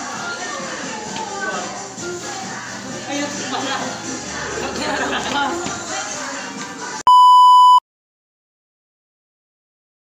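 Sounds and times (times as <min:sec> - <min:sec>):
music: 0:00.0 - 0:07.0
voices: 0:00.0 - 0:07.0
loud electronic beep: 0:07.1 - 0:07.8.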